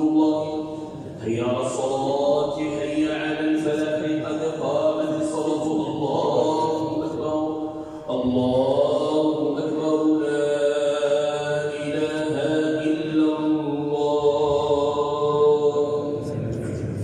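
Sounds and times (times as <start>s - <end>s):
man chanting recitation: 0.0s - 17.0s.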